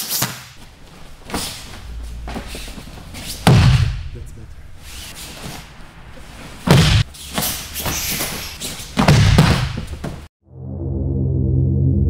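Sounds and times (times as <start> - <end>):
jackets rustling: 0.0 - 10.3
bodies thumping on mat: 0.2 - 4.1, 4.8 - 10.3.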